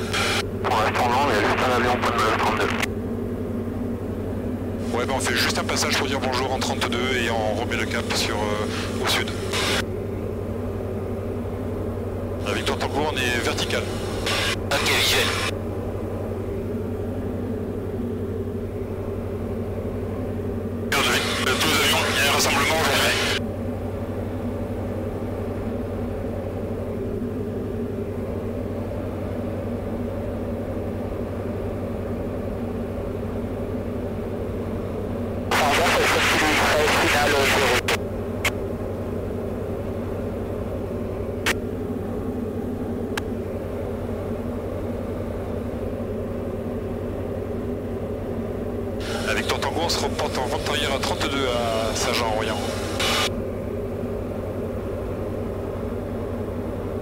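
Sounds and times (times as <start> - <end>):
aircraft engine and propeller droning: 0.0 - 57.0
loud hissing bursts: 49.0 - 49.5.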